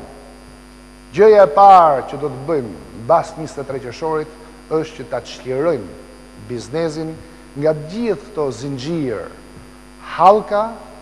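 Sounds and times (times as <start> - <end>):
steady electrical hum: 0.0 - 11.0
man talking: 1.1 - 9.4, 10.0 - 11.0.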